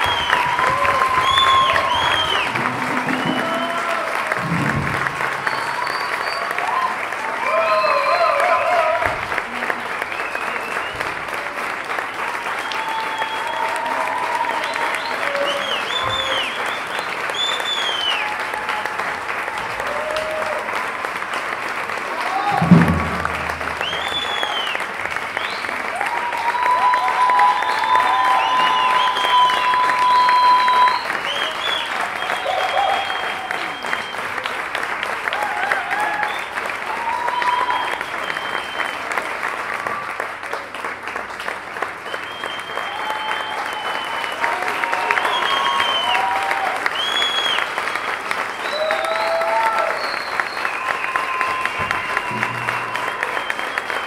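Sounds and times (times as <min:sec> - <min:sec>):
cheering and whoops: 0:00.0 - 0:21.4, 0:22.0 - 0:40.3, 0:42.0 - 0:54.0
crowd applauding: 0:00.0 - 0:54.0
loud low thump: 0:02.4 - 0:05.8, 0:22.5 - 0:24.1, 0:51.8 - 0:53.3.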